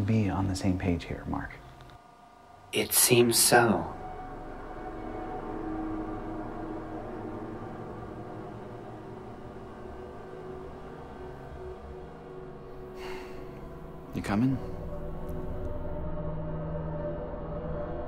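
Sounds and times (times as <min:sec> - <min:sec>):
drone-like background music: 0:00.0 - 0:18.0.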